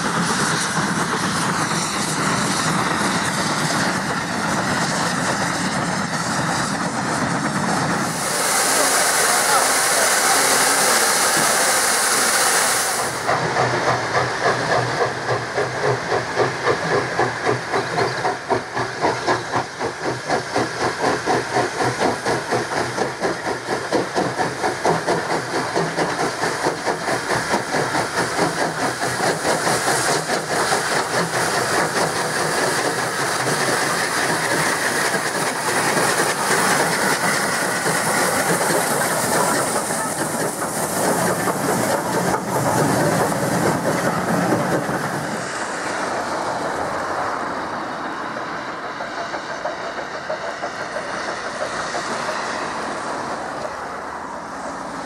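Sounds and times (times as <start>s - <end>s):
steam hissing: 0.0s - 55.0s
steam locomotive exhaust chuffs: 0.0s - 55.0s
train carriages rumbling by: 0.0s - 55.0s.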